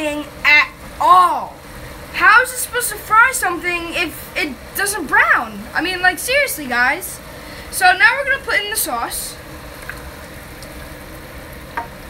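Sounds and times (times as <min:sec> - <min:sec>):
steady sizzle in pan: 0:00.0 - 0:12.0.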